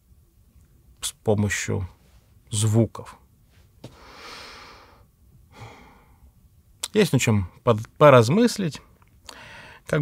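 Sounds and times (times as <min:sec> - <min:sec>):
man speaking: 0:01.0 - 0:03.2
man sighing: 0:04.0 - 0:06.2.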